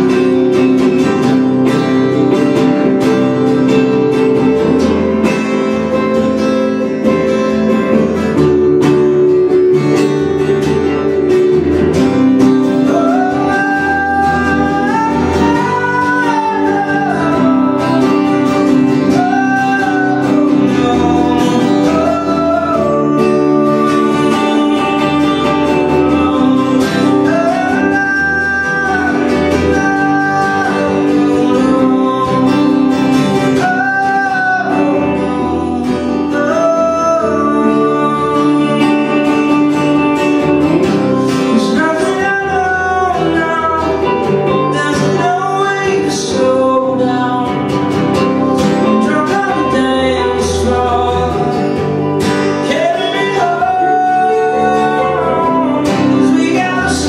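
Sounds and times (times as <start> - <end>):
electric guitar: 0.0 - 57.0
gliding lead guitar melody: 0.0 - 57.0
strummed acoustic guitar: 0.0 - 57.0.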